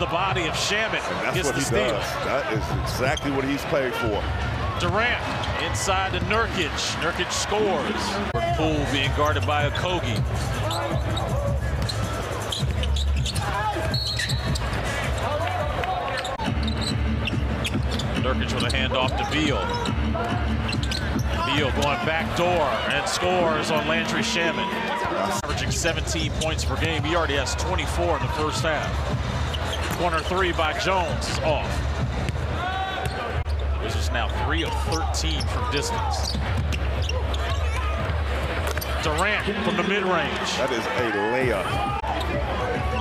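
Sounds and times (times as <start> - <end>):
crowd noise: 0.0 - 43.0.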